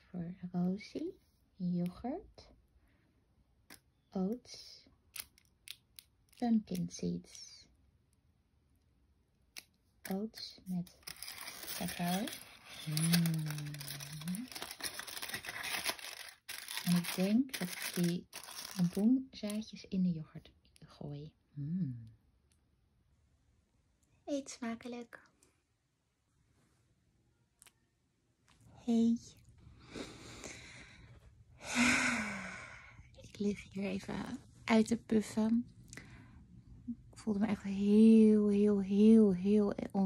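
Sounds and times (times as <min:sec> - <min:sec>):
aluminium foil crinkling: 0:10.1 - 0:19.7
woman sighing: 0:31.6 - 0:33.0.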